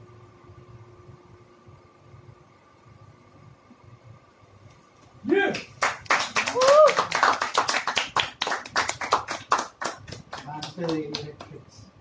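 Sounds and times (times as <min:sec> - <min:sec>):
small audience clapping: 0:05.3 - 0:11.8.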